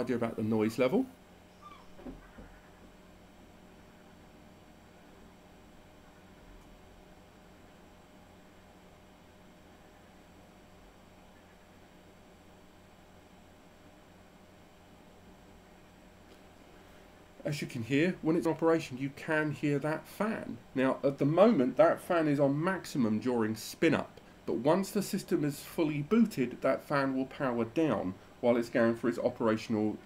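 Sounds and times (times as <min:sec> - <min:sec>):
cooling fan whirring: 0:00.0 - 0:30.0.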